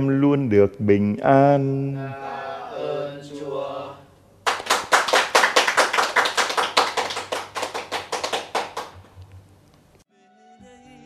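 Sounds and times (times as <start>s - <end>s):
hands clapping: 4.4s - 9.2s.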